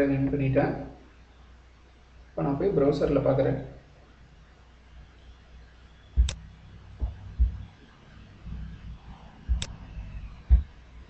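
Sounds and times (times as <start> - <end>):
computer mouse clicks: 6.2 - 6.4.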